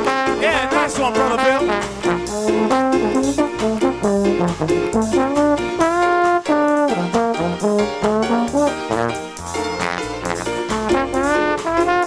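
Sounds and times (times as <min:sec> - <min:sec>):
horn section playing: 0:00.0 - 0:12.0
upright bass: 0:00.0 - 0:12.0.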